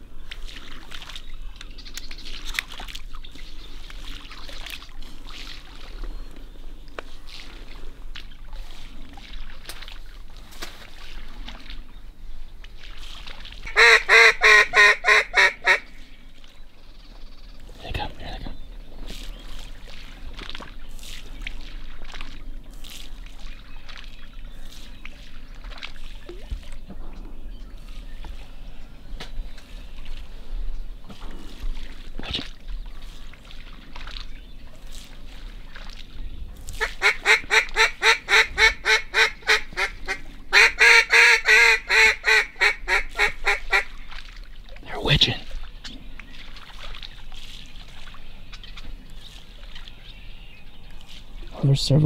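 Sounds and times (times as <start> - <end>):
faint marsh background: 0.0 - 52.0
duck call quacks: 13.7 - 15.9, 36.8 - 43.9.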